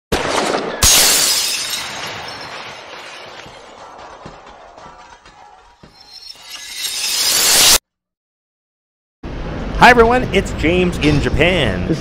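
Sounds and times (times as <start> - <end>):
glass shattering: 0.8 - 3.7, 5.8 - 7.8.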